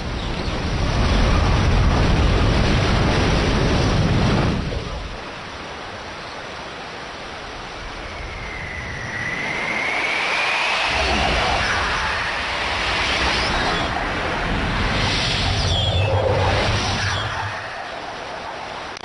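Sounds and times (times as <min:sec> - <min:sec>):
deep rumble of water: 0:00.0 - 0:19.0
rushing hiss of flowing water: 0:01.0 - 0:19.0
whistling whoosh gliding upward: 0:07.7 - 0:19.0.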